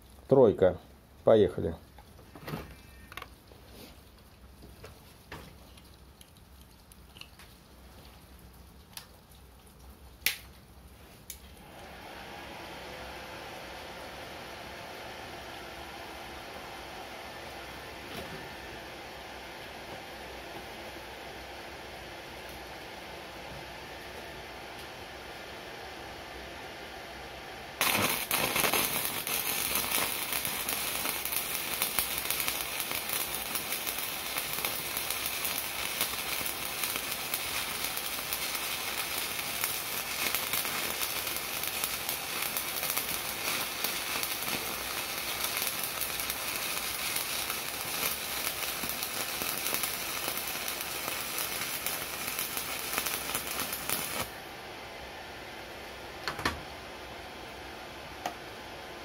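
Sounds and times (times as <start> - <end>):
welding arc burning: 27.8 - 54.4.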